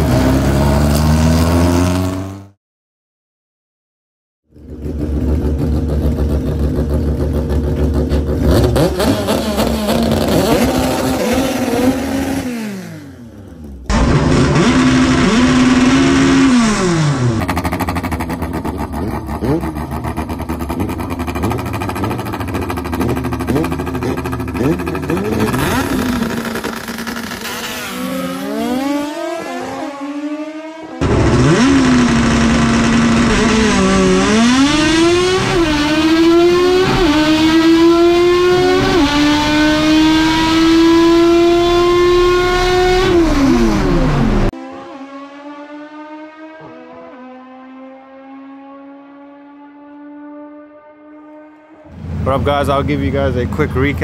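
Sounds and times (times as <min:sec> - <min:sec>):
car engines revving hard: 0:00.0 - 0:02.6, 0:04.6 - 0:54.0.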